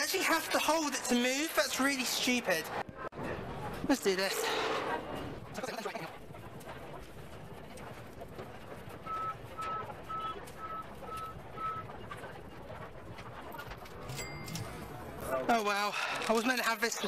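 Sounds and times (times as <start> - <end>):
restaurant hubbub: 0.0 - 17.0.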